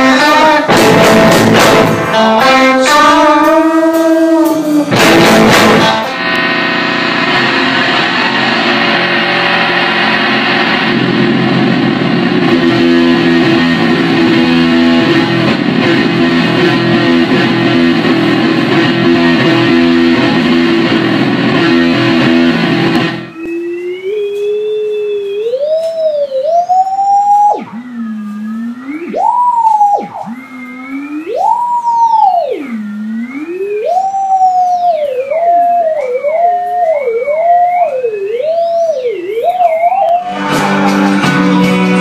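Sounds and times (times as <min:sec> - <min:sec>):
electric guitar strummed: 0:00.0 - 0:23.4, 0:40.2 - 0:42.0.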